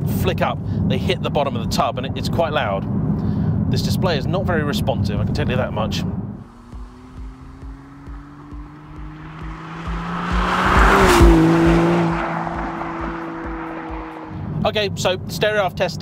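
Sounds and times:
sports car driving past: 6.4 - 14.6
music with steady beat: 6.5 - 14.2
tyre noise: 6.5 - 14.4.

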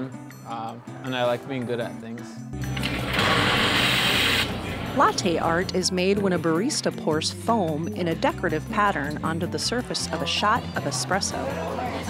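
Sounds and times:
espresso machine hiss: 3.1 - 4.5.

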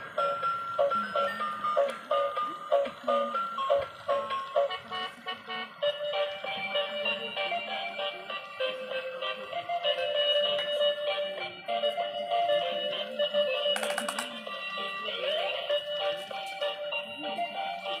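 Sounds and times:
toy car electronic beeping tune: 0.0 - 18.0.

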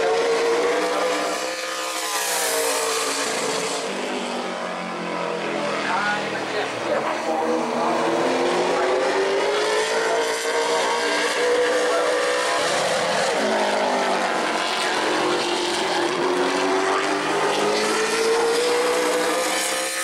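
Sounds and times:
race car engine at speed: 0.0 - 20.0.

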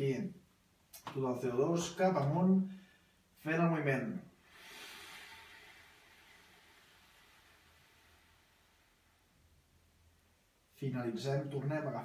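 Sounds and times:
man exhaling through mouth: 4.4 - 9.4.

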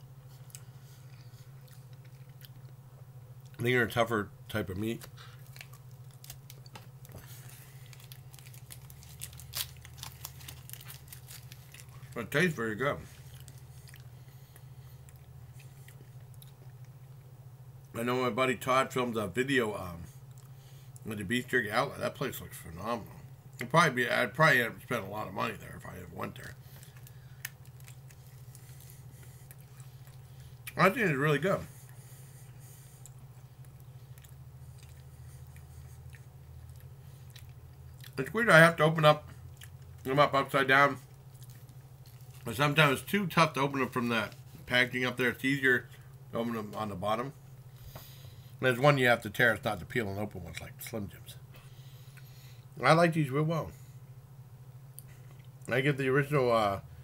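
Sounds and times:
steady low hum: 0.0 - 57.0
person chewing meat stick: 0.2 - 3.6, 5.1 - 12.2, 13.1 - 17.3, 26.6 - 30.8, 31.7 - 38.2, 39.3 - 40.0, 41.1 - 42.5.

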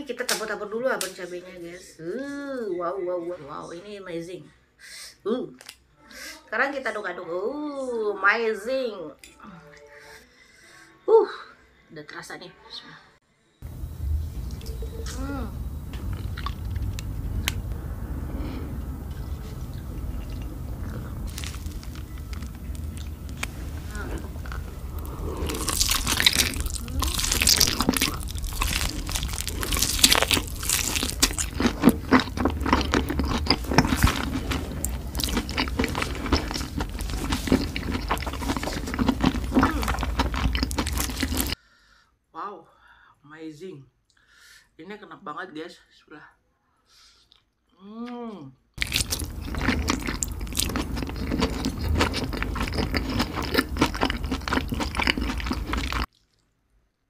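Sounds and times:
low hum: 13.6 - 41.6
slurping and chewing noodles: 16.0 - 17.6, 18.5 - 41.6, 48.8 - 56.6.

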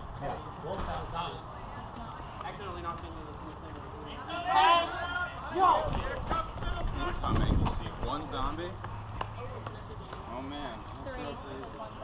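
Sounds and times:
footsteps running on pavement: 1.9 - 12.0.

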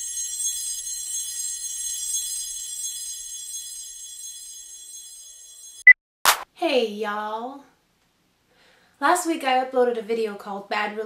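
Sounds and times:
high-pitched bell-like ringing: 0.0 - 5.9.

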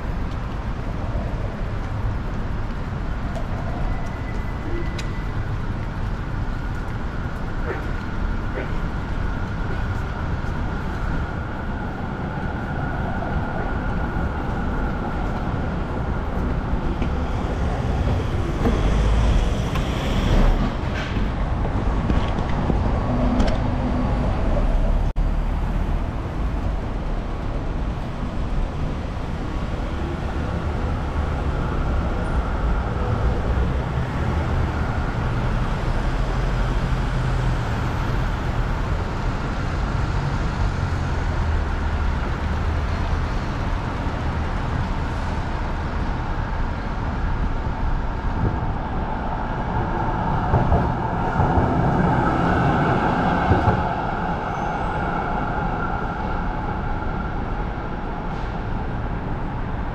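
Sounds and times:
city street traffic rumble: 0.0 - 59.9.

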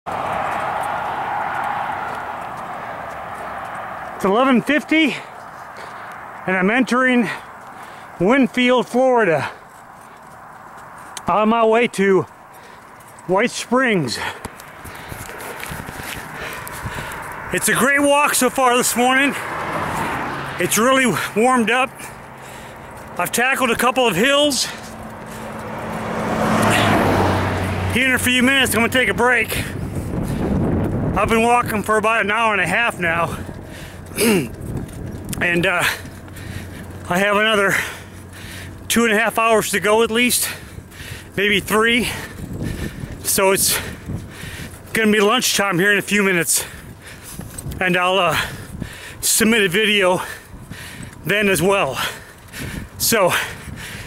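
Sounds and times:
highway traffic noise: 0.0 - 54.0
low engine hum: 0.1 - 8.9, 18.4 - 54.0
vehicle passing close by: 0.1 - 54.0.

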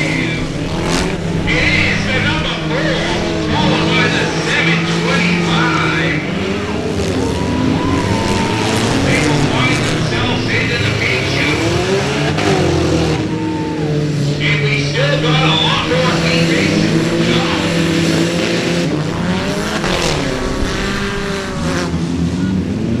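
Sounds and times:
race car engines running hard: 0.0 - 23.0.

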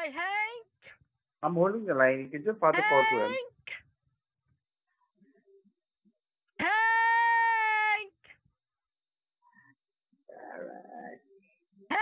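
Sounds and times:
woman yelling: 0.0 - 0.6, 2.8 - 3.7, 6.6 - 8.2.

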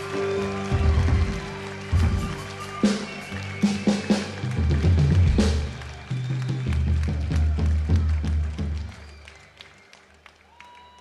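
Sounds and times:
drums and cymbals striking: 0.0 - 5.8
live band playing: 0.0 - 8.8
faint scattered applause: 0.0 - 11.0.

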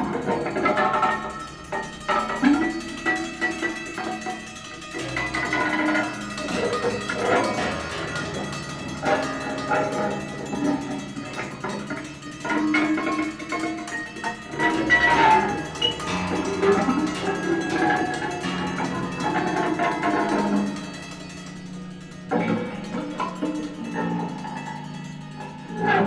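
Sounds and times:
held pitched tones: 0.0 - 26.0
plucked metallic and knocking sounds: 0.0 - 26.0.

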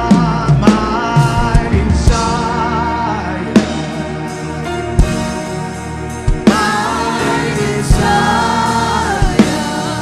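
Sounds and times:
gospel singing: 0.0 - 10.0
sustained accompaniment: 0.0 - 10.0.

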